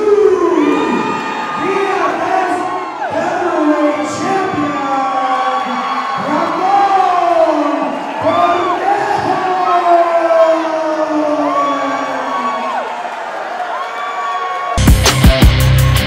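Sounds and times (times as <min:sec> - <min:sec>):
arena crowd cheering and shouting: 0:00.0 - 0:16.0.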